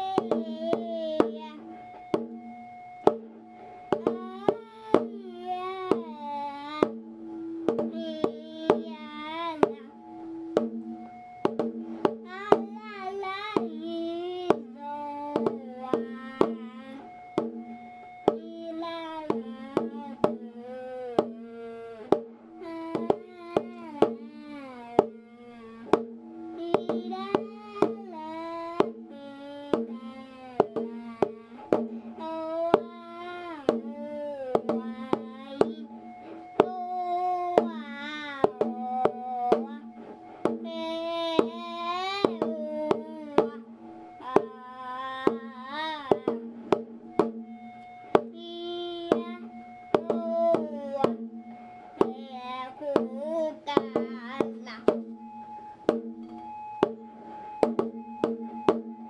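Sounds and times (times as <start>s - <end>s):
person singing ornamented melody: 0.0s - 2.2s, 3.0s - 11.2s, 12.1s - 17.4s, 18.2s - 47.2s, 48.1s - 55.0s
sharp percussive knocks: 0.0s - 20.5s, 22.1s - 29.2s, 29.8s - 52.3s, 52.9s - 59.0s.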